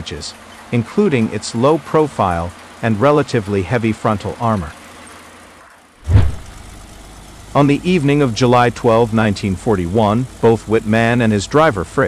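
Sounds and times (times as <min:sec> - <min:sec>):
vehicle engine rumbling: 0:00.0 - 0:12.0
loud low-pitched burst: 0:06.0 - 0:06.7.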